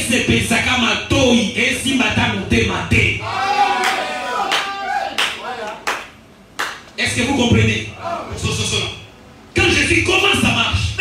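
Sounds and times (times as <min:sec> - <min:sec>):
hand claps: 0:03.8 - 0:07.0.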